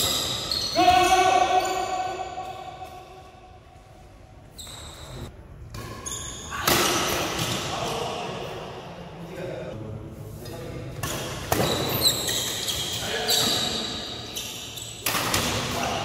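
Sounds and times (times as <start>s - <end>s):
person shouting: 0.8s - 2.4s
racket hitting shuttlecock: 6.6s - 7.6s, 15.0s - 15.9s.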